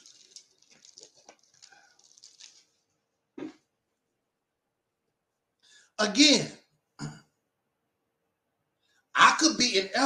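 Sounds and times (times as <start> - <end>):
rustling and handling noise: 0.0 - 4.2.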